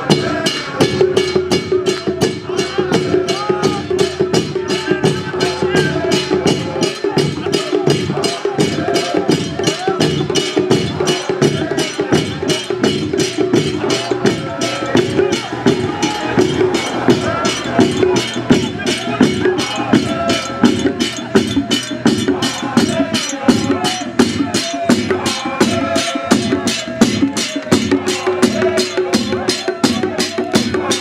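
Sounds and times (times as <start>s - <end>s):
crowd singing: 0.0s - 31.0s
frame drums and cymbals beating: 0.0s - 31.0s.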